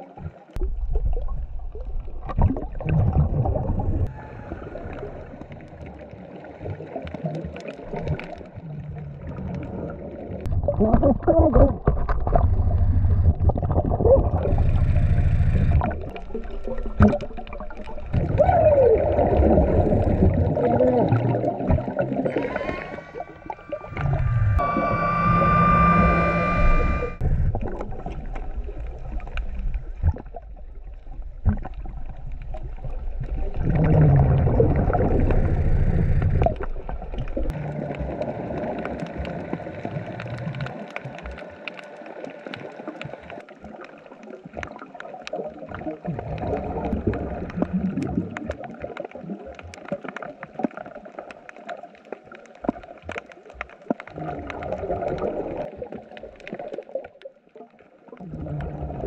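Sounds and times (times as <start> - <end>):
bubbles gurgling underwater: 0.0 - 24.4, 27.4 - 59.0
whistling tone: 22.2 - 27.2.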